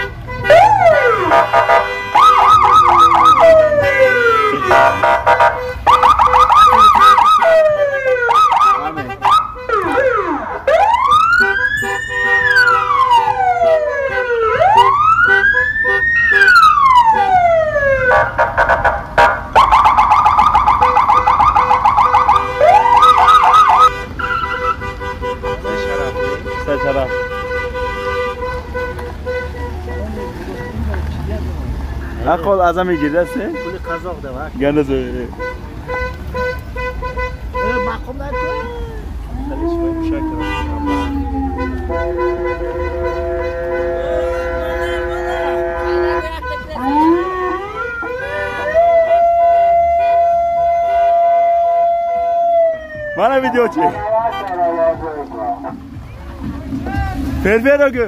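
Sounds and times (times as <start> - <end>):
traffic rumble: 0.0 - 58.0
electronic sirens wailing: 0.5 - 24.8, 38.6 - 55.9.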